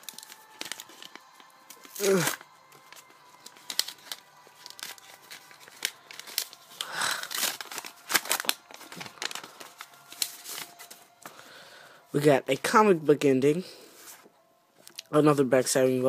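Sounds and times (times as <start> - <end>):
paper crinkling and tearing: 0.0 - 11.3.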